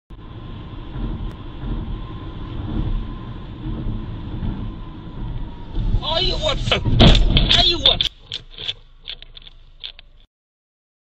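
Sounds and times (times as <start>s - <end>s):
car engine and tyre rumble: 0.1s - 10.3s.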